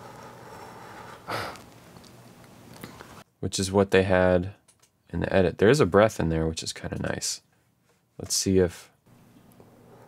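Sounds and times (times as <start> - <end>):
person breathing: 0.8 - 1.6.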